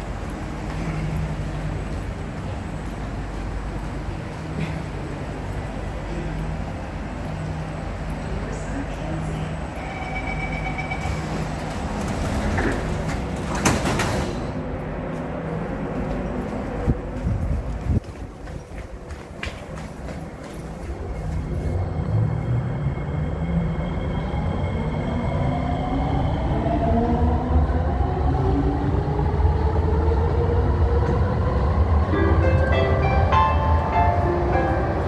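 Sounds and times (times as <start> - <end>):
train low rumble: 0.0 - 35.0.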